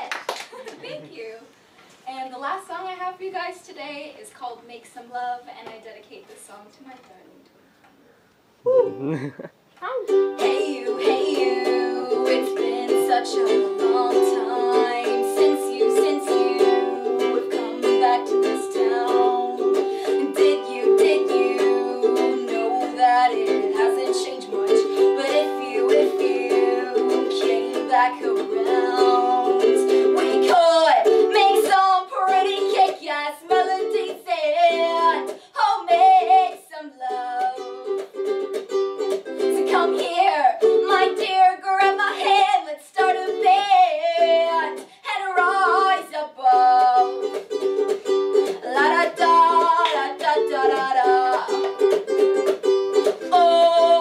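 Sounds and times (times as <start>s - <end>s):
woman singing: 9.8s - 38.2s, 39.4s - 47.4s, 48.4s - 52.0s, 53.2s - 54.0s
ukulele strumming: 9.8s - 54.0s.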